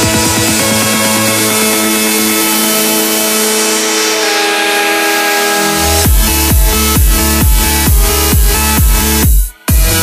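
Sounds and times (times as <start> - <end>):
sustained synthesizer chord: 0.0 - 10.0.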